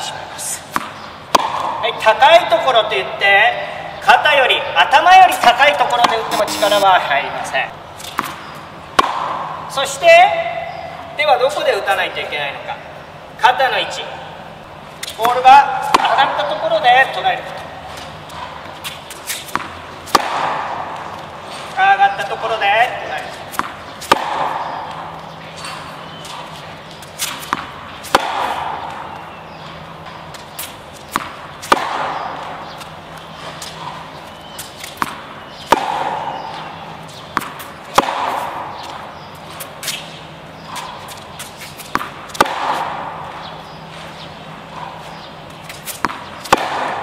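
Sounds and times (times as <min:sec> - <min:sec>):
tennis ball hit by racket: 0:00.6 - 0:02.1, 0:05.3 - 0:06.7, 0:08.0 - 0:09.7, 0:15.0 - 0:16.5, 0:17.5 - 0:21.6, 0:23.2 - 0:47.0.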